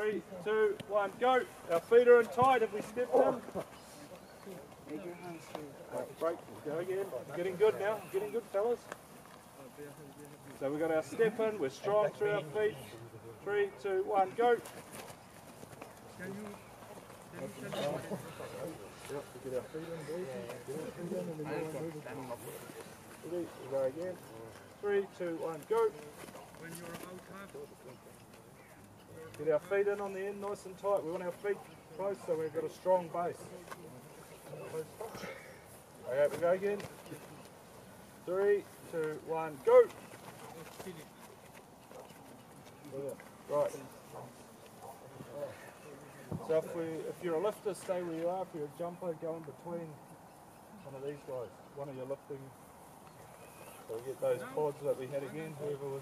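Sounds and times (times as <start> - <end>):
light ticks and scuffs: 33.5 - 45.6.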